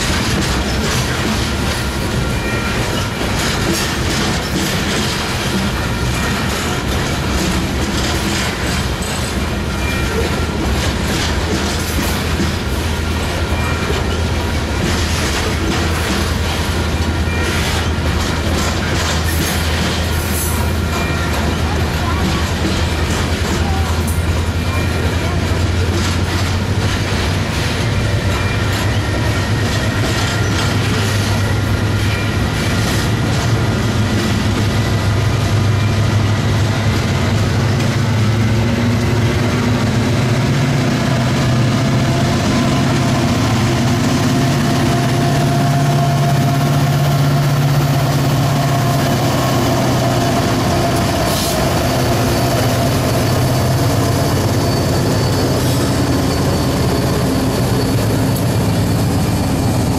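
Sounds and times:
diesel locomotive engine hum: 0:00.0 - 0:59.9
train wheels on rails: 0:00.0 - 0:59.9.

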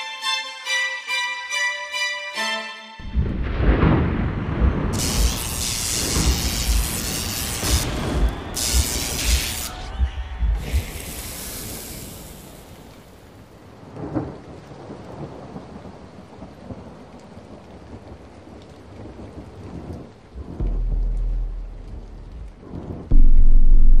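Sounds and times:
rain hissing: 0:03.0 - 0:23.6
thunder rumbling: 0:03.0 - 0:24.0.

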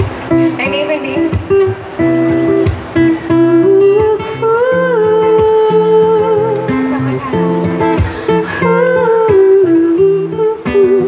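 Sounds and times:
strummed acoustic guitar: 0:00.0 - 0:11.0.

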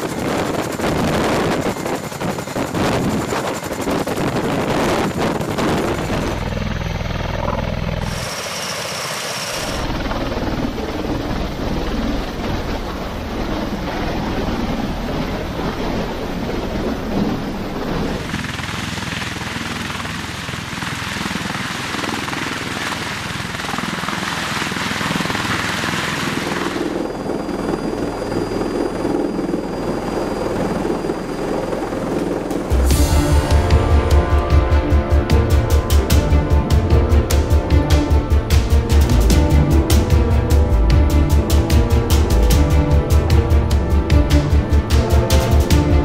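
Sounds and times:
helicopter rotor and turbine noise: 0:00.0 - 0:46.0.

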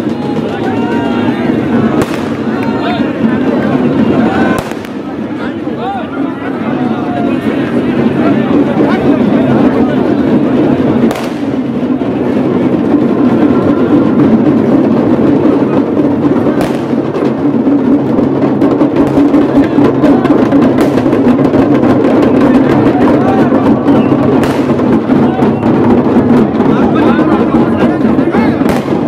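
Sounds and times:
drums and percussion music: 0:00.0 - 0:29.0
voices of large crowd: 0:00.0 - 0:29.0
sharp percussion strikes: 0:10.8 - 0:11.9.

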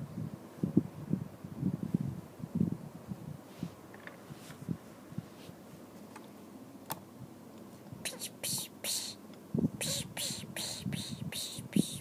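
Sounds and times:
person whispering: 0:08.0 - 0:09.2, 0:09.8 - 0:12.0.

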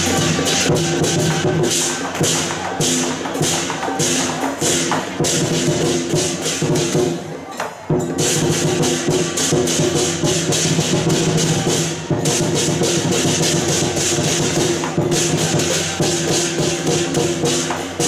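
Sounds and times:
lion dance percussion: 0:00.0 - 0:18.0.

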